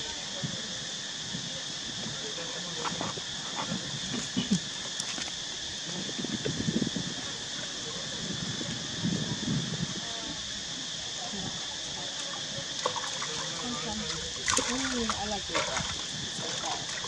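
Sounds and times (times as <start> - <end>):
water sloshing and splashing: 12.1 - 17.0.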